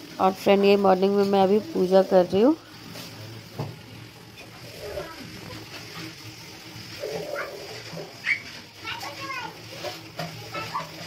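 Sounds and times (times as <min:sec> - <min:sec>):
children calling and chattering: 0:04.4 - 0:11.0.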